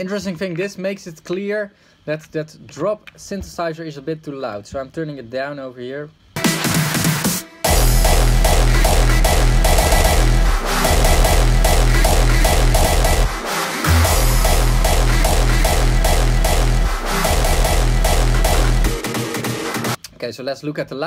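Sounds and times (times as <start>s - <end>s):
hardstyle electronic music: 6.4s - 20.0s.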